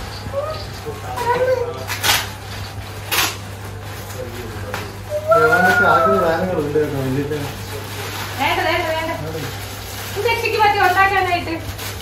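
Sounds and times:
wrapping paper crumpling: 0.0 - 12.0
high gliding vocal sound: 5.1 - 6.5.

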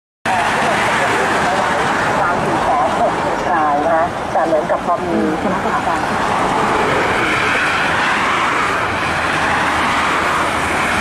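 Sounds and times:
person talking: 0.3 - 6.2
trucks passing on highway: 0.3 - 11.0.

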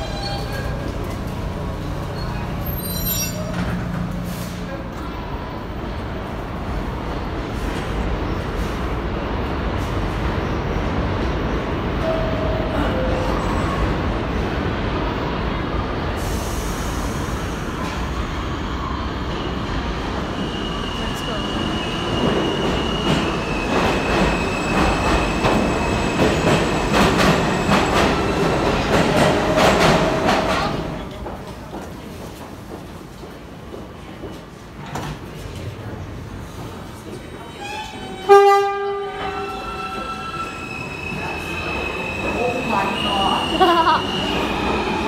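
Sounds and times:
train wheels squealing: 0.0 - 0.9, 2.1 - 3.6, 19.3 - 28.5, 39.1 - 45.0
train rumbling past: 0.0 - 45.0.

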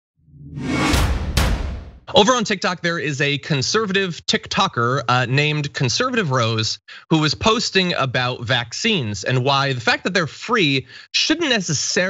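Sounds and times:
whoosh: 0.3 - 2.0
deep boom: 0.3 - 2.1
sharp hits: 0.4 - 2.1.

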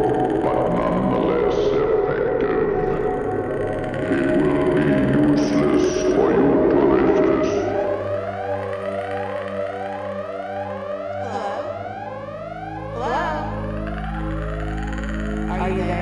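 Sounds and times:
electronic sci-fi alarm music: 0.0 - 16.0.

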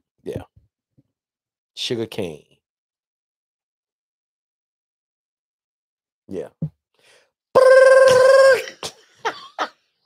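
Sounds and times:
person laughing: 7.8 - 9.8.

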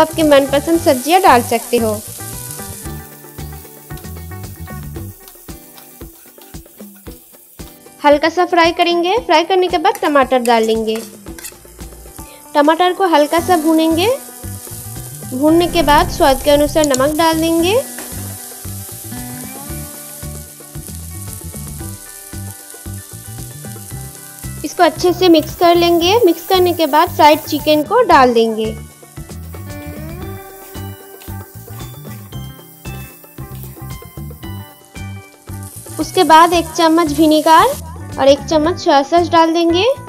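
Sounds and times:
background music: 0.0 - 40.0
vegetables sizzling in oil: 0.0 - 40.0.

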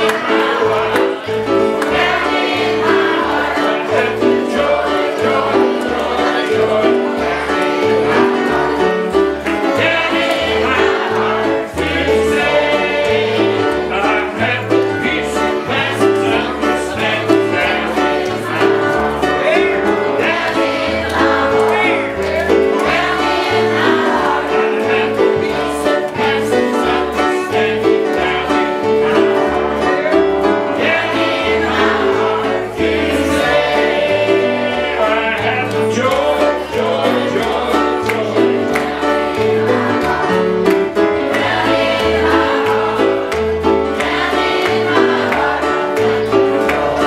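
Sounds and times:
children singing together: 0.0 - 47.0
instrumental accompaniment with bass: 0.0 - 47.0.

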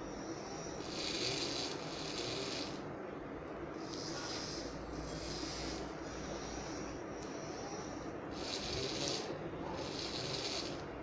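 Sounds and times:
small motors whirring: 0.5 - 2.8, 3.8 - 10.9.

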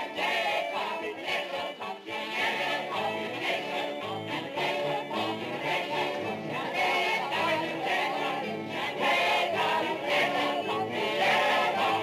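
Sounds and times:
chorus of voices singing: 0.0 - 12.0
instrumental music: 0.0 - 12.0.

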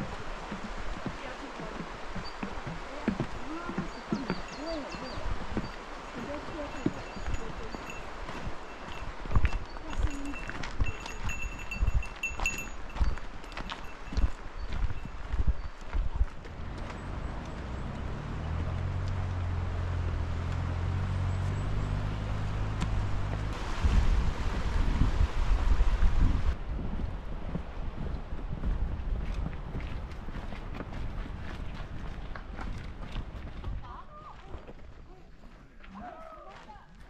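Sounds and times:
footsteps crunching on gravel: 0.0 - 17.0
wind hiss on microphone: 7.4 - 16.4, 23.5 - 30.0.

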